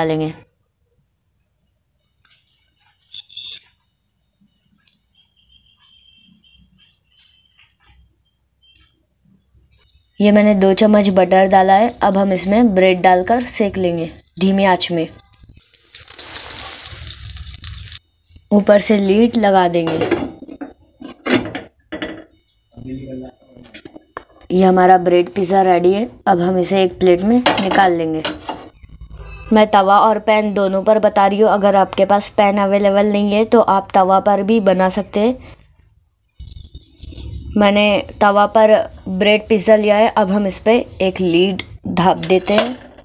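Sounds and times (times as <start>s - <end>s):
short high chirps: 3.0s - 3.7s.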